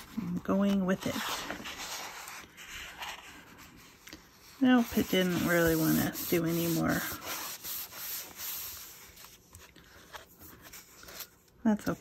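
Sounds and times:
hand rubbing paper: 0:00.0 - 0:11.4.

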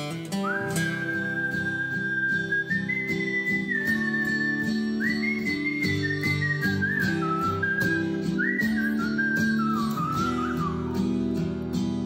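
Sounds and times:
strummed acoustic guitar: 0:00.0 - 0:12.0
whistled melody: 0:00.0 - 0:12.0.

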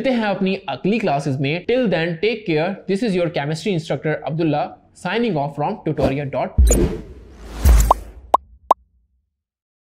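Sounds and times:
whoosh into low thump: 0:06.6 - 0:08.7.

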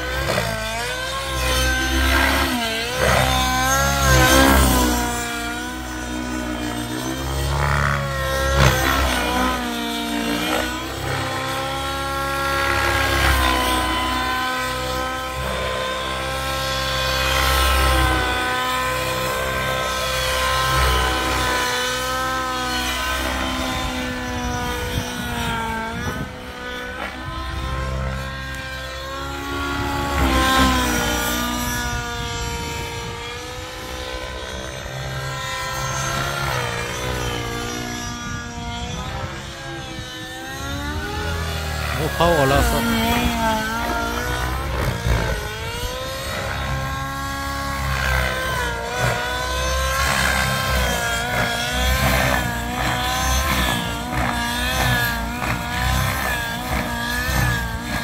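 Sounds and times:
radio-controlled helicopter flying: 0:00.0 - 0:58.0.

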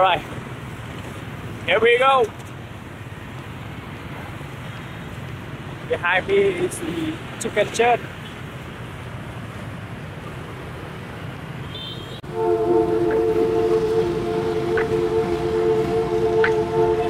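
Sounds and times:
street traffic noise: 0:00.0 - 0:17.0
background music held chord: 0:12.2 - 0:17.0.

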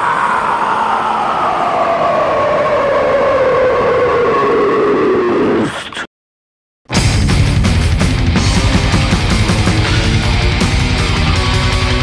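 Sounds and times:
noisy drone sliding down in pitch: 0:00.0 - 0:05.7.

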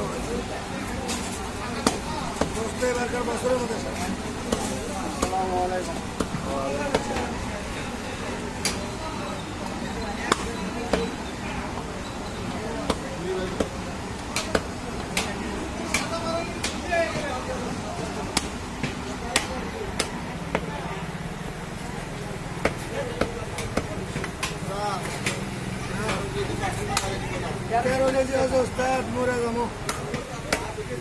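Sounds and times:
cleaver chopping on wooden block: 0:29.8 - 0:30.7.

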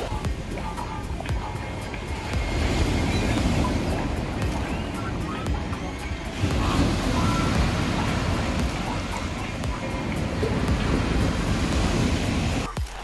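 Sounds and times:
surf breaking on pebble beach: 0:02.1 - 0:12.7.

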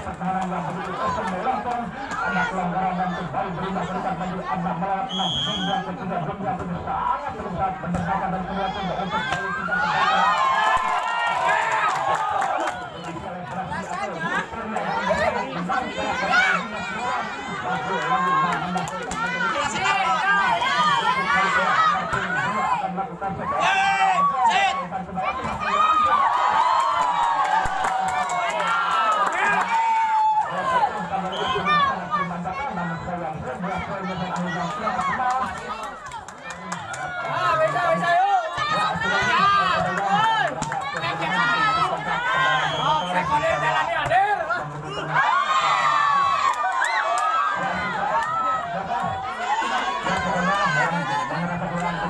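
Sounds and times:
many voices chattering: 0:00.0 - 0:52.0.

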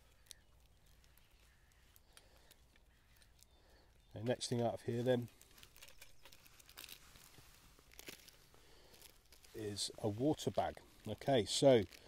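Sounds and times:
plastic packaging crinkling: 0:00.0 - 0:12.0
items rustling in metal tin: 0:04.2 - 0:12.0.

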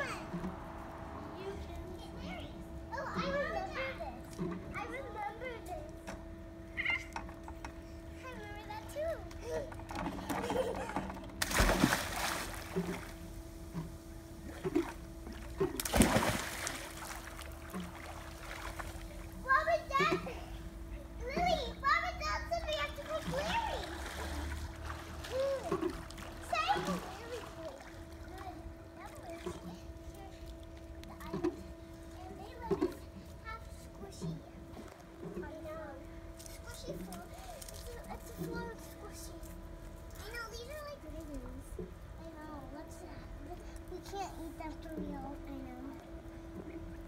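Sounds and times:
children's voices: 0:00.0 - 0:00.5, 0:01.1 - 0:06.1, 0:18.9 - 0:24.6, 0:25.2 - 0:39.6, 0:40.2 - 0:46.2
steady hum: 0:00.0 - 0:47.0
child exclaiming: 0:01.4 - 0:04.2, 0:21.2 - 0:24.0, 0:25.3 - 0:25.8
splash into pool: 0:11.4 - 0:13.1, 0:15.7 - 0:18.9.

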